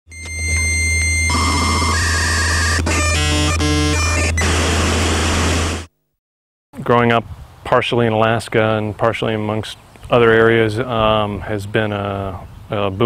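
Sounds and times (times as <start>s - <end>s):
steady high tones: 0.1s - 5.9s
short buzzing tones: 0.1s - 6.1s
loud static noise: 1.3s - 6.0s.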